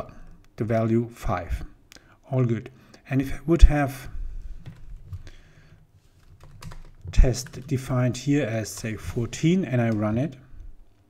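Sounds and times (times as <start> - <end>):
computer keyboard keystrokes: 6.2 - 7.8.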